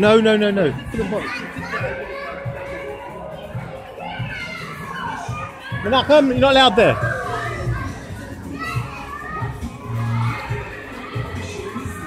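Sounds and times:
children playing and talking: 0:00.0 - 0:12.0
faint music: 0:00.0 - 0:12.0.

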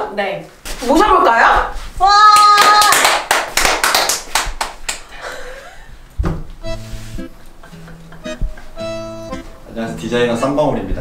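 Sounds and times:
person cheering: 0:02.0 - 0:03.1
hand clapping: 0:02.4 - 0:05.1.

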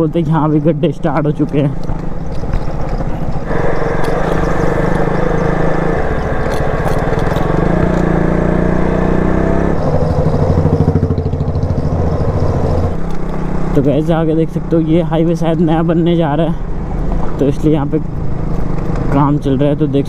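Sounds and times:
motorcycle engine: 0:01.6 - 0:20.0.

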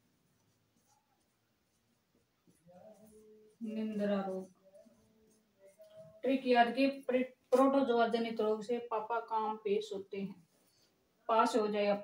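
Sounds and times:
marker pen writing on whiteboard: 0:00.0 - 0:07.9.

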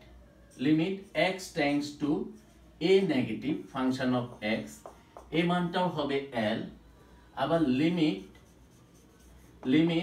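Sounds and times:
marker writing on whiteboard: 0:00.5 - 0:05.8, 0:07.7 - 0:10.0
man speaking: 0:00.6 - 0:06.8.

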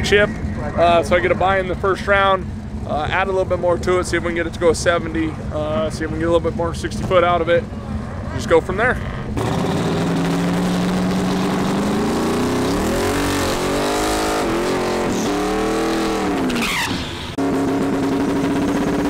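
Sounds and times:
engine revving: 0:00.0 - 0:19.0.

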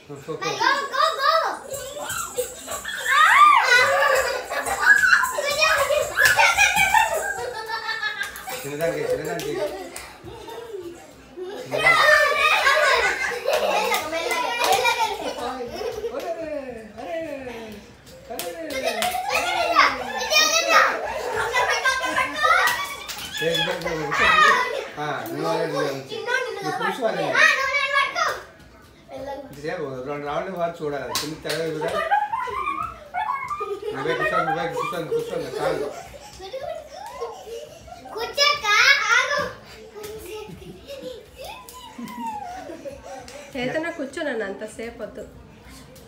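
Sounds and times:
children calling out: 0:00.6 - 0:08.7, 0:09.9 - 0:15.4, 0:18.9 - 0:28.6, 0:32.1 - 0:43.4.

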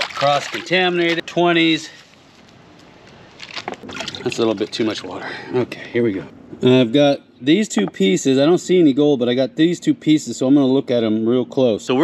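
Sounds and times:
water sloshing and splashing: 0:00.0 - 0:01.3, 0:03.4 - 0:04.9.

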